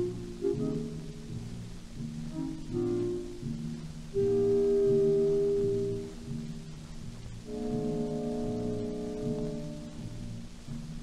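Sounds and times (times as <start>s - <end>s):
record surface hiss: 0.0s - 11.0s
orchestra playing: 2.3s - 6.8s, 7.4s - 10.4s.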